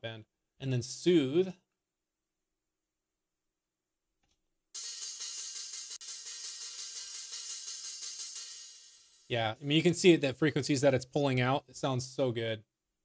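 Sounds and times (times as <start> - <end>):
fast hi-hat pattern: 4.8 - 10.9.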